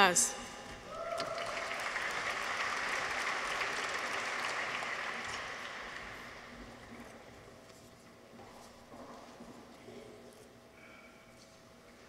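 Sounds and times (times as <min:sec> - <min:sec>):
audience applauding: 0:01.1 - 0:06.9.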